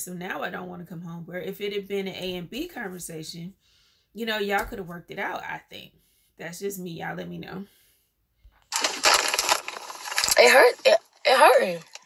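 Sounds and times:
crackling rustling noise: 8.6 - 12.0.

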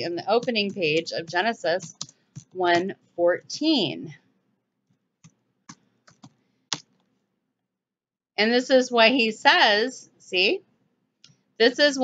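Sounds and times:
computer keyboard keystrokes: 0.0 - 2.9, 5.2 - 7.0.

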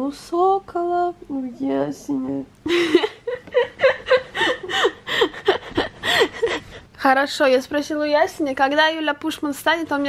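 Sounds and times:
woman laughing: 2.6 - 6.8.

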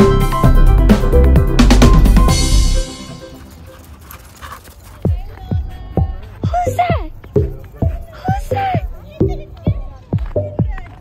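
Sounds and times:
background music: 0.0 - 11.0
dog running through snow: 3.2 - 5.4.

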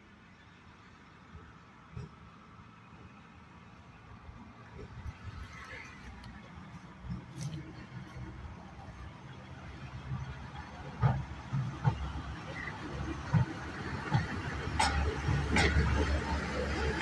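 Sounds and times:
diesel locomotive engine rumble: 0.0 - 17.0.

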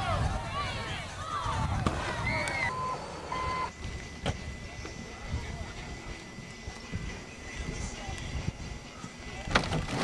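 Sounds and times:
wind rumble on microphone: 0.0 - 2.7, 3.7 - 10.0.

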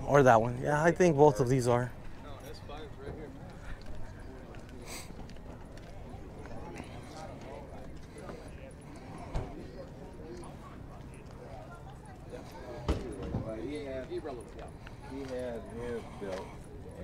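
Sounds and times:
outdoor background noise: 0.0 - 17.0
people talking indistinctly: 0.0 - 17.0.

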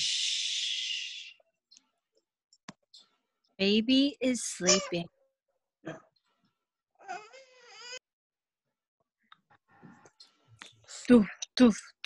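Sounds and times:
baby crying: 7.0 - 8.0.

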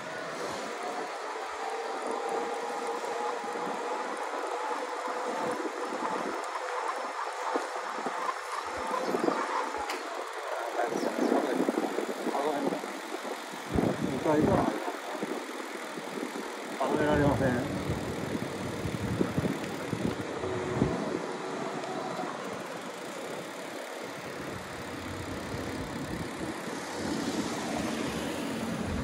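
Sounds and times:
wind noise: 0.0 - 22.6, 24.2 - 29.0
electric bike motor whine: 0.0 - 29.0
road noise: 0.0 - 29.0.

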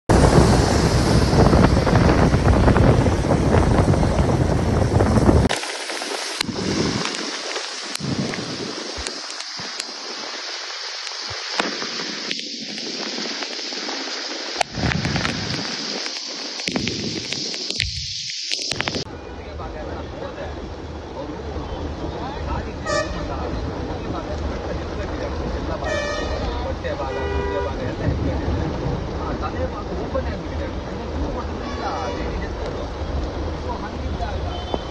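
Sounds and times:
wind buffeting microphone: 0.1 - 19.1, 21.8 - 31.6
heavy rain: 0.1 - 34.9
tyres on wet road: 0.1 - 34.9
vehicle horn toot: 22.8 - 23.4, 25.8 - 27.8, 34.5 - 34.9.

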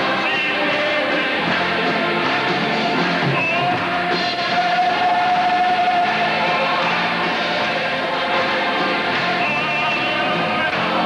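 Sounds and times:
choir singing with music: 0.0 - 11.0.

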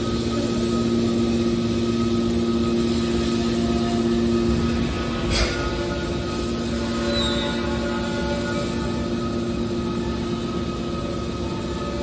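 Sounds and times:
machine hum: 0.0 - 12.0
steady whining tones: 0.0 - 12.0.

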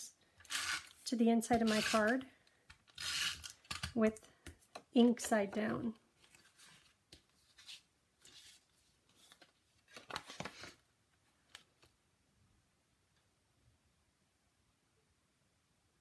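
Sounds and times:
cardstock rustling: 6.2 - 10.8.

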